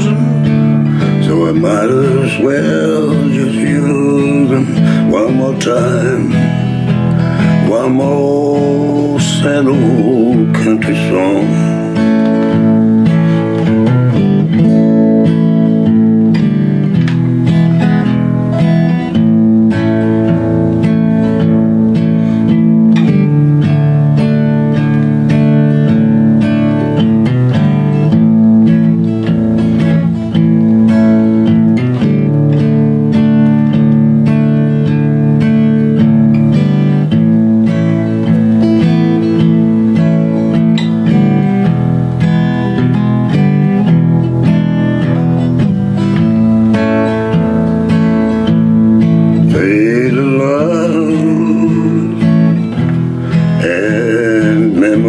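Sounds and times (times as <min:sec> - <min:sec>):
acoustic guitar strumming chords: 0:00.0 - 0:55.0
person singing country song: 0:00.0 - 0:55.0.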